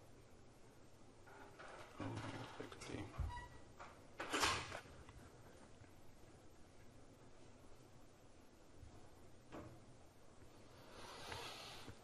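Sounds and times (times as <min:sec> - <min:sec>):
scrape: 0:10.8 - 0:12.0.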